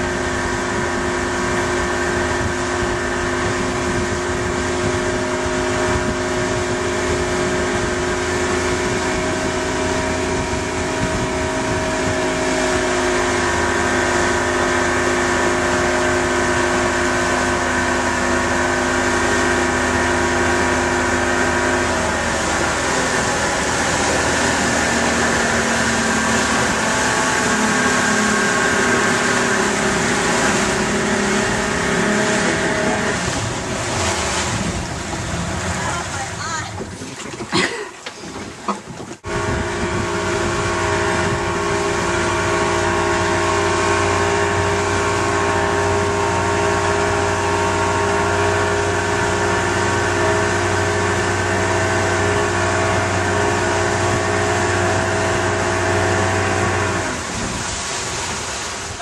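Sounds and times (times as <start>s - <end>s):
motorboat engine running: 0.0s - 59.0s
rushing water: 0.0s - 59.0s
wind: 0.0s - 59.0s.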